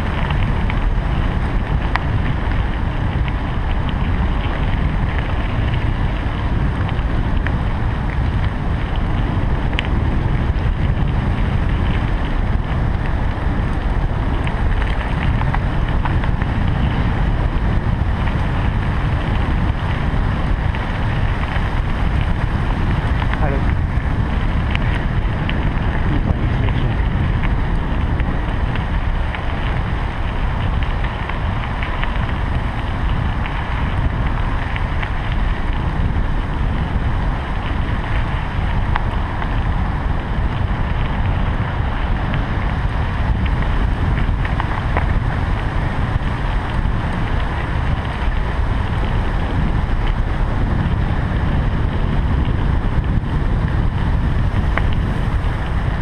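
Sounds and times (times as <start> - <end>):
bicycle tyres rolling on path: 0.0 - 56.0
wind rushing over microphone: 0.0 - 56.0.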